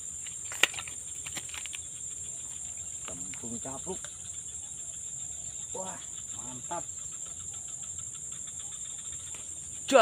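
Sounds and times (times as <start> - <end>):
high-pitched insect chorus: 0.0 - 10.0.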